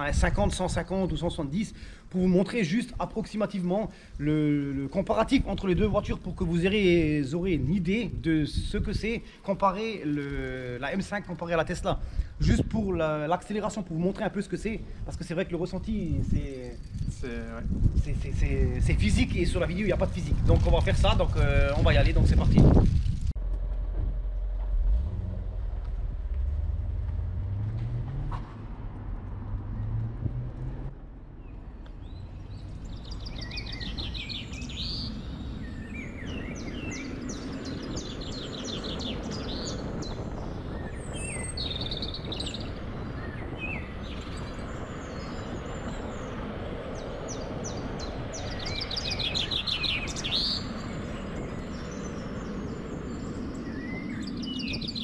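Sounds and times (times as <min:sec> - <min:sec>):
steady outdoor rumble: 0:00.0 - 0:55.0
low hum: 0:23.0 - 0:32.9
small birds chirping: 0:31.4 - 0:55.0.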